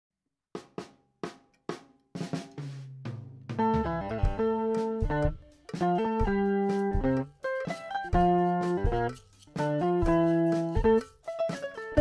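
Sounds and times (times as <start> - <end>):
drum kit hits: 0.6 - 7.3, 8.1 - 12.0.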